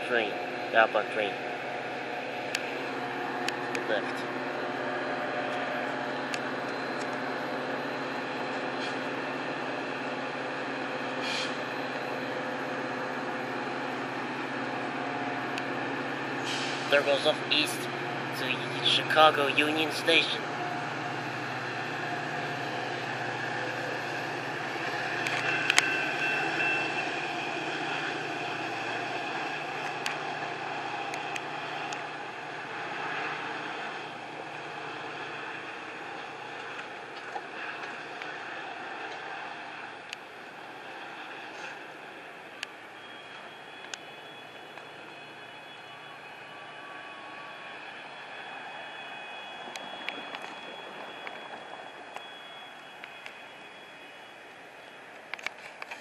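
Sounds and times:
diesel locomotive engine running: 0:00.0 - 0:56.0.

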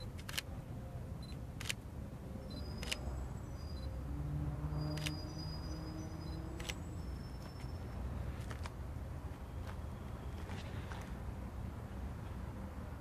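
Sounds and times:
short high focus beeps: 0:02.5 - 0:04.0.

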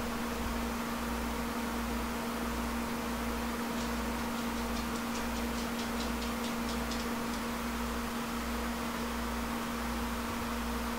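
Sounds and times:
low electrical hum: 0:00.0 - 0:10.9
light quick ticks: 0:03.8 - 0:07.5.

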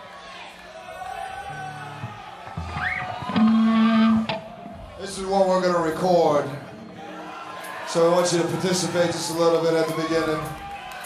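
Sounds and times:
electric guitar notes: 0:02.0 - 0:05.0.

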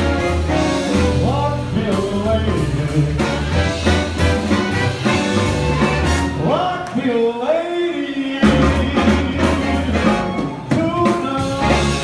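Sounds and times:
live swing band playing: 0:00.0 - 0:12.0.

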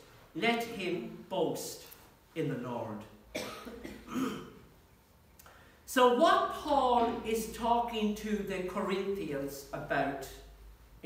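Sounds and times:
man coughing: 0:03.3 - 0:04.7.

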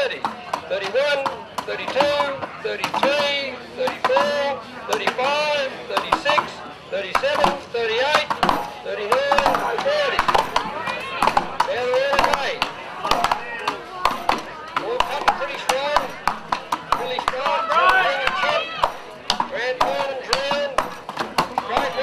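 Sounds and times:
axes chopping wooden blocks: 0:00.1 - 0:05.3, 0:06.0 - 0:22.0.

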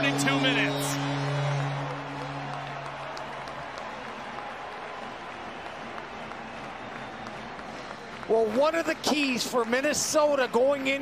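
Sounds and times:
low held tone: 0:00.0 - 0:03.4
crowd cheering and applauding: 0:00.0 - 0:11.0.

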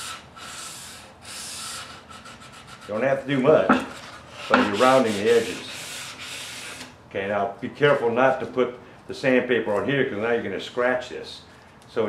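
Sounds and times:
sandpaper scraping wood: 0:00.0 - 0:03.0, 0:03.8 - 0:06.9.

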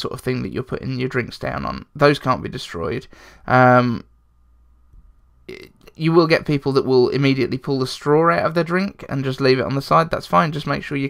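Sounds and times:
man speaking: 0:00.0 - 0:04.1, 0:05.5 - 0:11.0
faint low hum: 0:00.0 - 0:11.0.

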